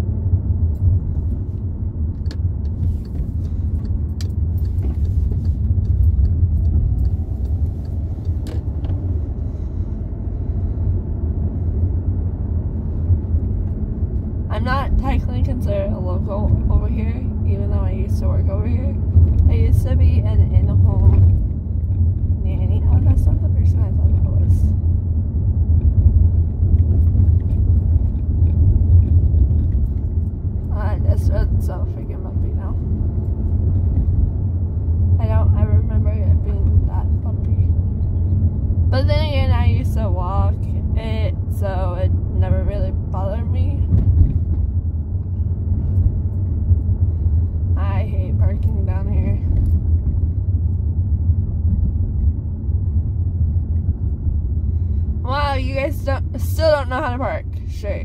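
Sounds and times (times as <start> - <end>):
car engine and tyres rumbling: 0.0 - 58.0.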